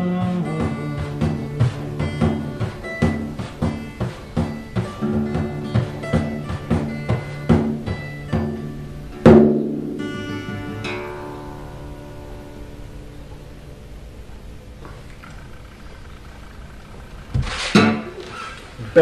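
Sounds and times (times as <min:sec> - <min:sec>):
hand frame drum beating: 0:00.0 - 0:10.3
acoustic guitar strumming: 0:00.0 - 0:19.0.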